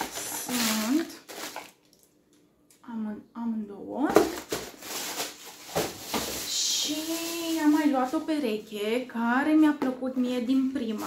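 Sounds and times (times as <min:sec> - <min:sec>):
packaging rustling: 0:00.0 - 0:02.1, 0:04.2 - 0:08.2.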